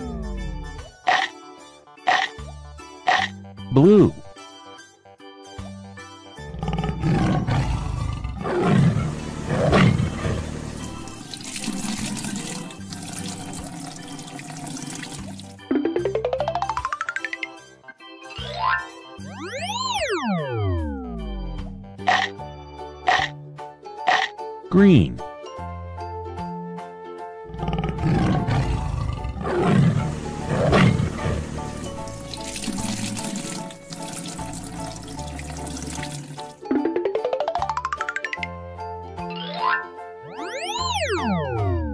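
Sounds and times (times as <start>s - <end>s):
light background music: 0.0s - 41.9s
cartoon tiger roar: 6.5s - 10.4s, 27.5s - 31.5s
gushing liquid pouring: 10.4s - 15.6s, 31.1s - 36.6s.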